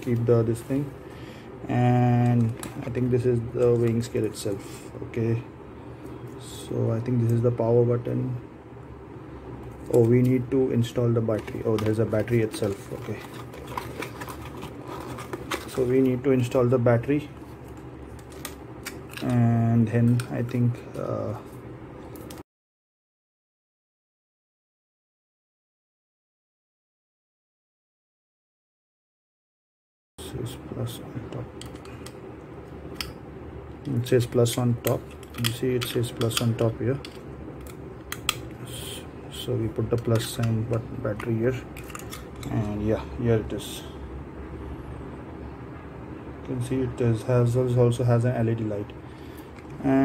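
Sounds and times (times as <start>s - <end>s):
cardboard and plastic rustling: 11.3s - 16.2s.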